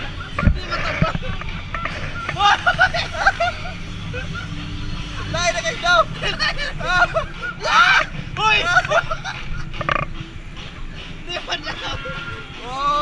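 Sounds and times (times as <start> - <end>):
riders yelling and laughing: 0.0 - 13.0.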